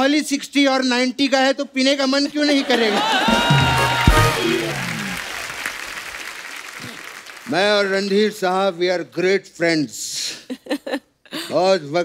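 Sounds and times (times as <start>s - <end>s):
audience applauding: 2.9s - 8.2s.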